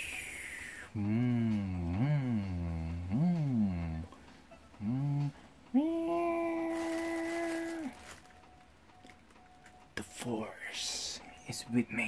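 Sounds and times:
man humming long note: 0.8s - 4.2s, 4.8s - 8.0s.

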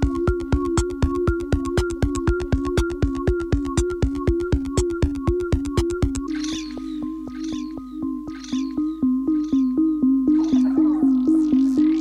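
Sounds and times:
clicking electronic beat: 0.0s - 6.7s.

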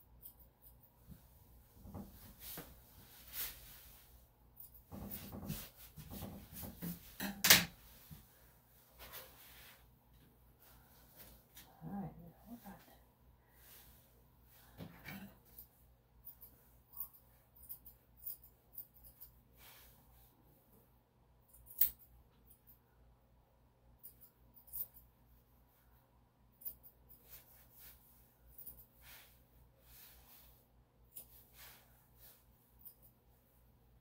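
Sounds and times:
scissors snipping fur: 21.5s - 22.6s.

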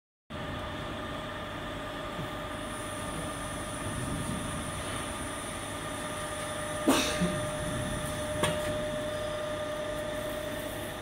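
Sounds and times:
high whine: 0.3s - 11.0s.

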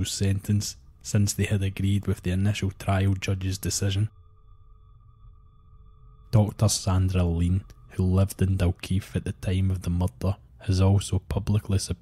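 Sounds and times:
low rumble: 0.0s - 11.8s
quiet drone music: 0.0s - 12.0s.

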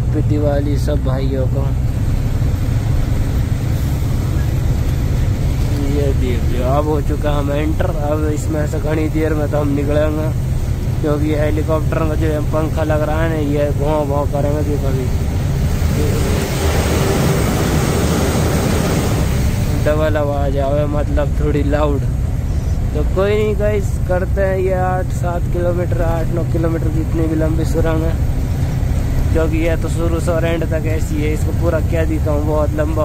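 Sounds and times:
truck engine and road rumble: 0.0s - 33.0s
ventilation fans whirring: 1.7s - 33.0s.

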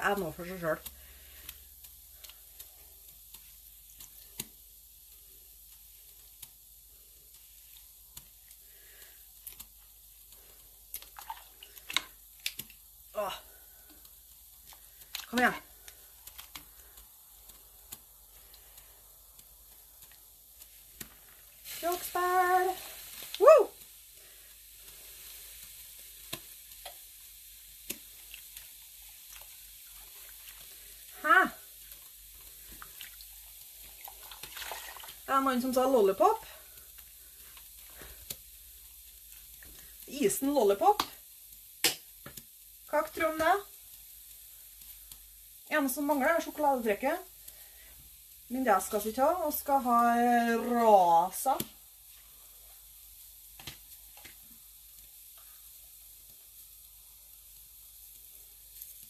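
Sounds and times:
wet yarn sloshing in pot: 0.0s - 12.9s, 27.8s - 38.3s
tongs clicking against pot: 0.8s - 6.6s, 9.4s - 9.8s, 10.9s - 12.8s.

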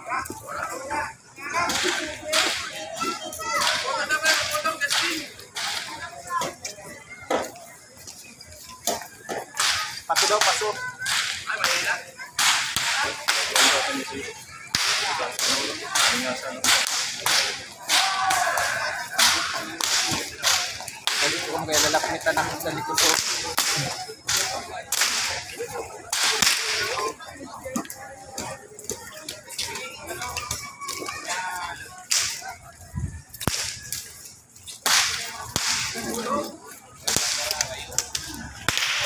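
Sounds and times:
murmur of voices: 0.0s - 39.0s
sharp cracks: 9.6s - 14.0s, 14.7s - 25.5s, 26.1s - 27.0s, 32.1s - 32.4s, 33.4s - 34.1s, 34.8s - 36.1s, 37.0s - 39.0s.

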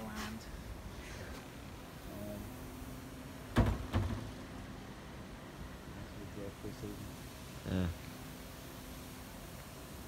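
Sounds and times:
sharp knocks: 3.5s - 4.3s.

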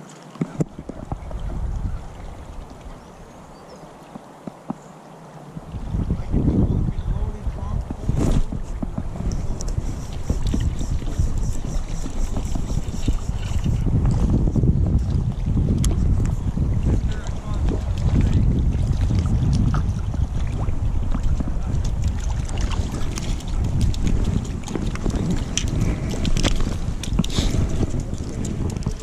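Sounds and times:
wind buffeting microphone: 0.5s - 3.6s, 5.5s - 29.0s.

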